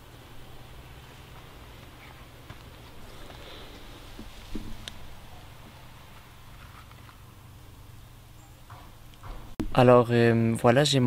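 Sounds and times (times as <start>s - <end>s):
soft thump on twigs: 4.1s - 4.8s.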